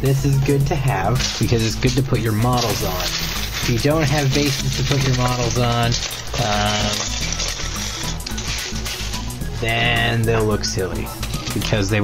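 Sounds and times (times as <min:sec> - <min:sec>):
background music: 0:00.0 - 0:12.0
plastic bag crinkling: 0:01.0 - 0:12.0.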